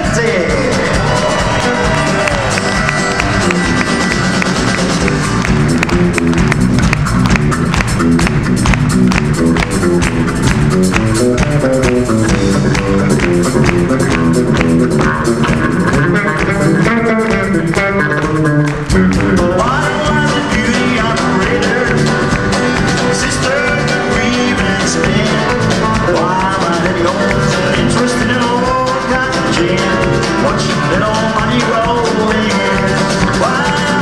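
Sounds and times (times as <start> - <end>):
country band playing: 0.0 - 34.0
sliding bending guitar notes: 0.7 - 31.2.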